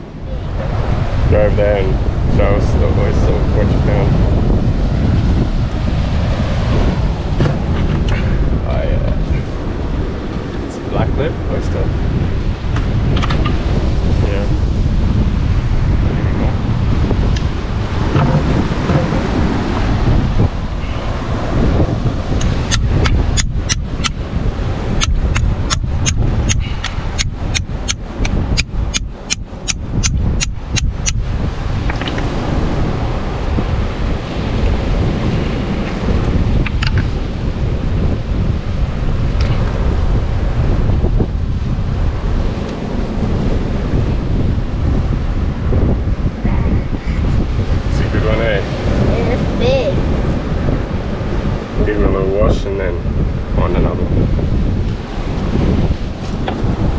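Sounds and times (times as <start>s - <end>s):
surf on rocky shore: 0.0s - 56.9s
wind buffeting microphone: 0.0s - 56.9s
sharp clicks: 31.9s - 32.2s.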